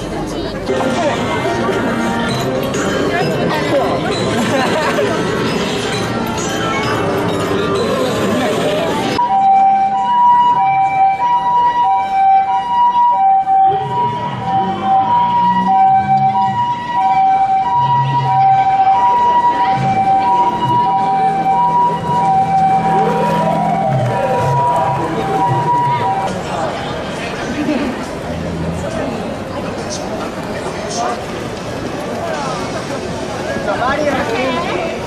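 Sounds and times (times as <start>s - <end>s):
two-tone ambulance siren: 9.1s - 26.4s.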